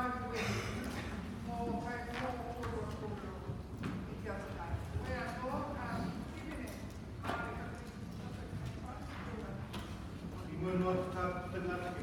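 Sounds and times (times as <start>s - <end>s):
faint voices in a hall: 0.0s - 12.0s.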